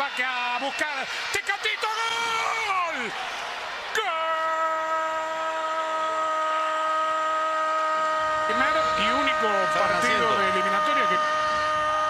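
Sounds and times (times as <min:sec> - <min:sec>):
crowd noise: 0:00.0 - 0:12.0
commentator shouting goal call: 0:08.5 - 0:11.3.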